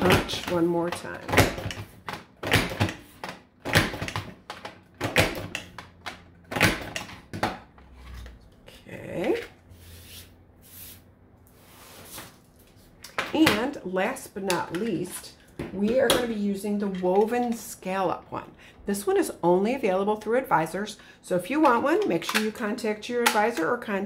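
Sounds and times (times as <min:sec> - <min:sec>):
plastic punch clicks and clunks: 0:00.0 - 0:07.7
paper rustling and sliding: 0:09.7 - 0:13.0.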